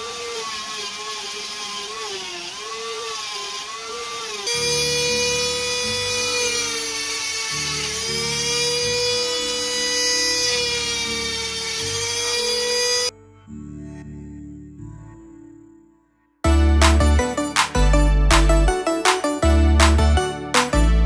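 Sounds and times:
rotary tool sanding whine: 0.0s - 13.1s
background music with bass line: 16.4s - 21.0s.

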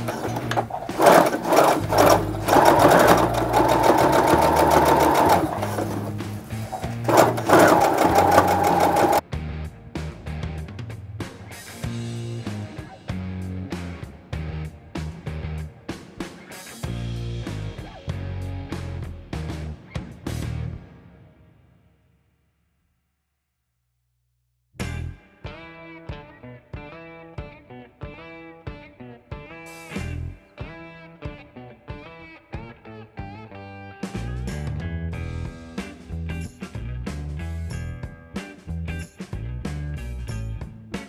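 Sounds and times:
sewing machine needle rattling: 0.0s - 9.2s.

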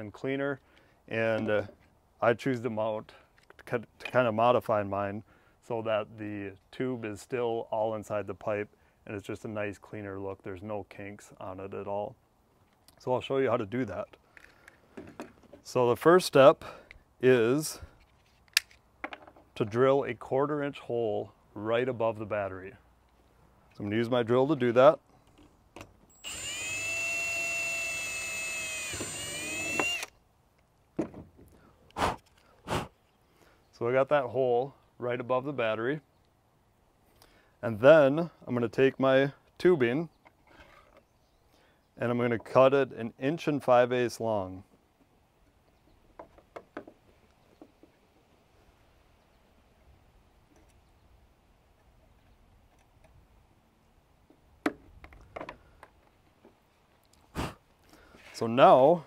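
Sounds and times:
small knocks: 19.0s - 19.5s, 46.2s - 48.0s
cordless drill boring plastic: 26.1s - 30.1s.

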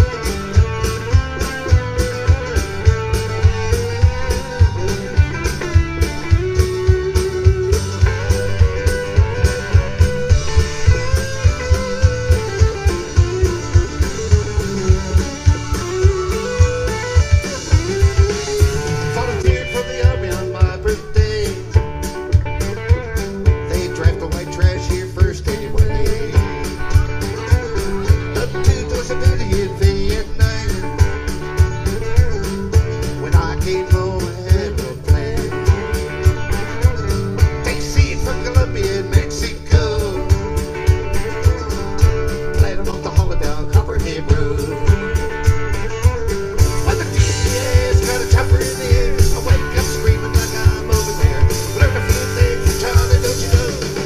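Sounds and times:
lead guitar melody: 0.0s - 54.0s
steady drum beat: 0.0s - 54.0s.

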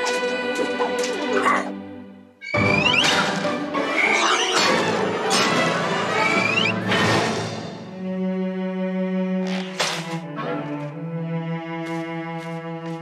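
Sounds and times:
bowed violins: 0.0s - 13.0s.

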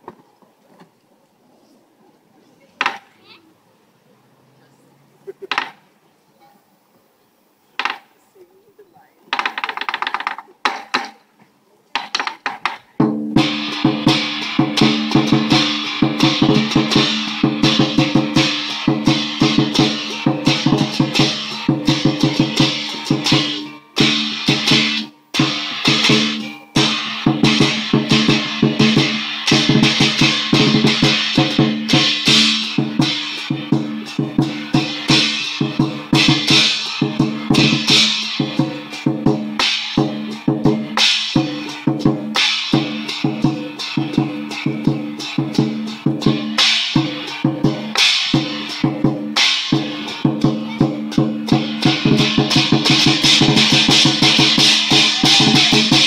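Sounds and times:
large drum beating fast rhythm: 12.0s - 56.0s
crashing cymbals: 13.4s - 56.0s.

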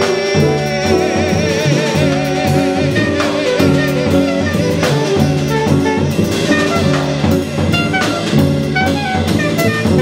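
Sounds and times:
man singing: 0.0s - 5.5s
drum kit with cymbals: 0.0s - 10.0s
saxophone: 0.0s - 10.0s
upright bass: 0.0s - 10.0s.

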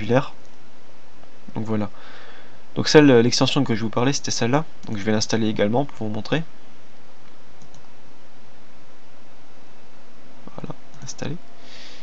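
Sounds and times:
recording background hiss: 0.0s - 12.0s
faint mouse clicks: 7.2s - 7.9s.

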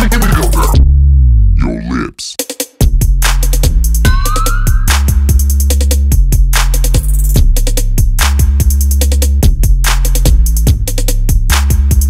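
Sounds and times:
trap music: 0.0s - 0.8s
heavy bass line: 0.0s - 2.4s.

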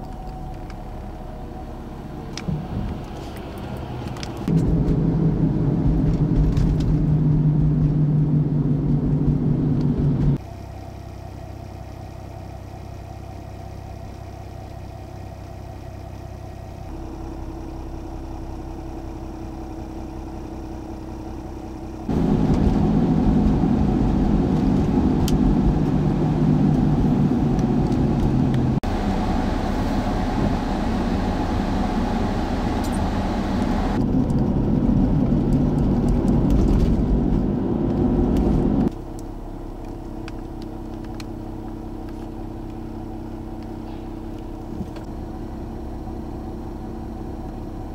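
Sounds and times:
truck engines running: 0.0s - 47.9s.

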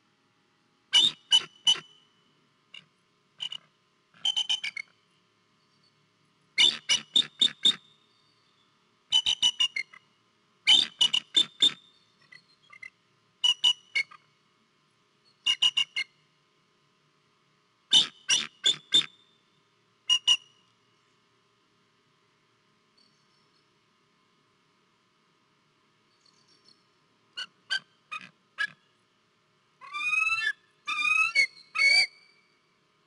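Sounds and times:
eagle piping calls: 0.9s - 2.0s, 6.6s - 7.8s, 9.1s - 10.0s, 10.7s - 14.2s, 15.5s - 16.1s, 17.9s - 19.1s, 27.4s - 28.8s, 29.8s - 32.4s.

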